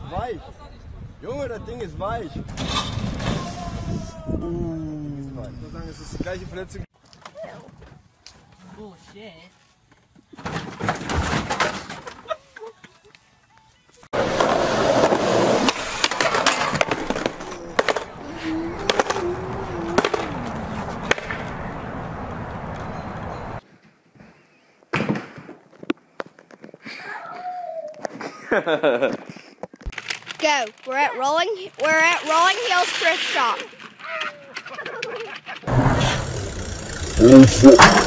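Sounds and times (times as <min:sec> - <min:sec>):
skateboard wheels rolling on concrete: 0:14.2 - 0:23.6, 0:29.7 - 0:36.2
skateboard clacks and knocks: 0:18.8 - 0:21.5.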